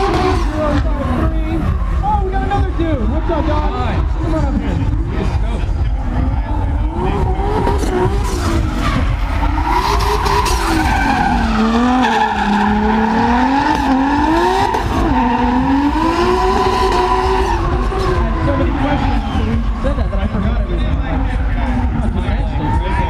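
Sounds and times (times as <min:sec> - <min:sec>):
car engine revving: 0:00.0 - 0:23.0
tire squeal: 0:06.8 - 0:23.0.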